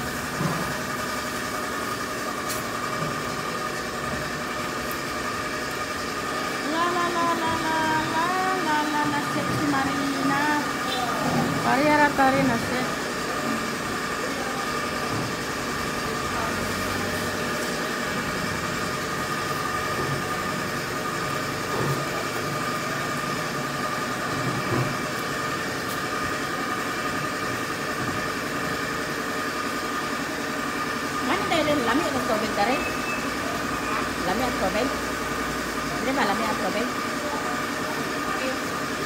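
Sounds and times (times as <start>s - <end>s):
motor humming with whine: 0.0s - 39.0s.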